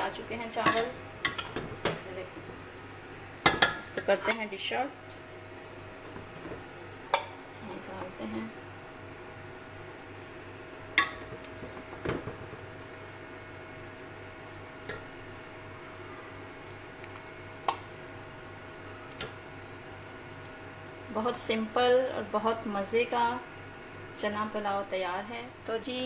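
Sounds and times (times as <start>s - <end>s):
faint steady hum: 0.0s - 26.0s.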